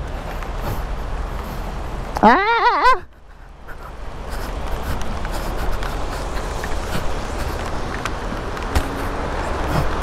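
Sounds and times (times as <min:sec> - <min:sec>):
wind buffeting microphone: 0:03.0 - 0:10.0
rain hiss: 0:03.1 - 0:10.0.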